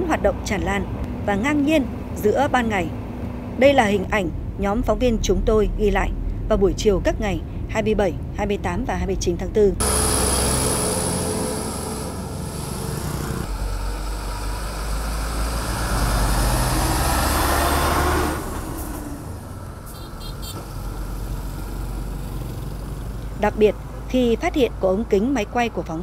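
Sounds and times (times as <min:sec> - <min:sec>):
quieter traffic: 0:00.0 - 0:26.0
truck diesel engine rumble: 0:00.0 - 0:26.0
tyre and road noise: 0:00.0 - 0:26.0.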